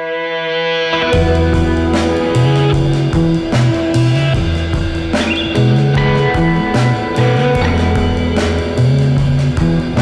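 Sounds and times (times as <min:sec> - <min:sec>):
background music with bass line: 0:00.9 - 0:10.0
percussion hits: 0:01.2 - 0:10.0.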